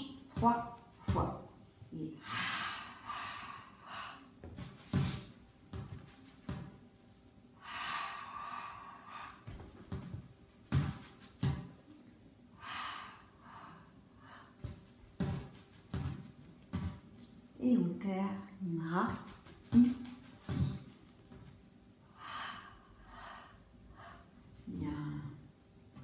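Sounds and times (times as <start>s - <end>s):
woman breathing hard: 2.2s - 5.5s, 7.5s - 10.2s, 12.5s - 15.5s, 22.0s - 24.6s.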